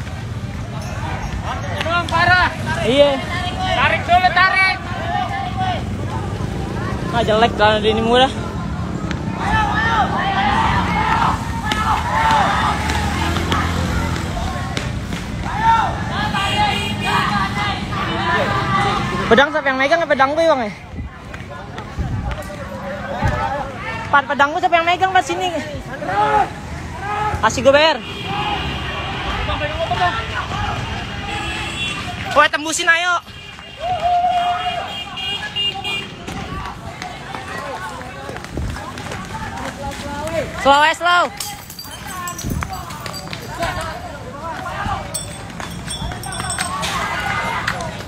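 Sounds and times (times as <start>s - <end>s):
crowd calling out: 0.0s - 19.7s, 21.2s - 48.0s
motorcycle engines running: 0.0s - 20.2s, 36.0s - 48.0s
street noise: 0.0s - 48.0s
men shouting: 7.9s - 14.6s, 15.4s - 19.6s, 25.2s - 31.4s.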